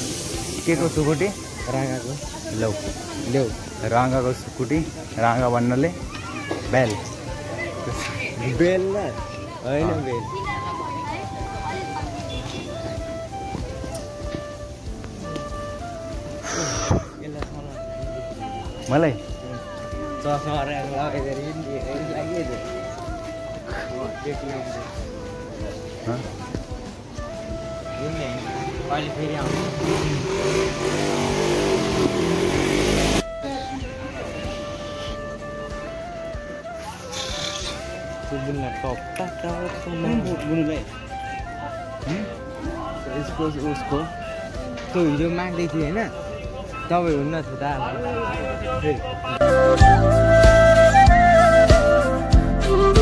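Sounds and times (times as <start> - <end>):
background music with held notes: 0.0 - 53.0
people talking and calling out: 0.0 - 53.0
street traffic: 0.0 - 53.0.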